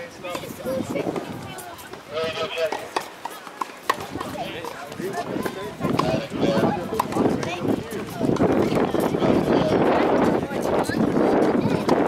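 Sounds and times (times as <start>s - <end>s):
people talking: 0.0s - 12.0s
tennis racket hitting ball: 2.7s - 8.8s.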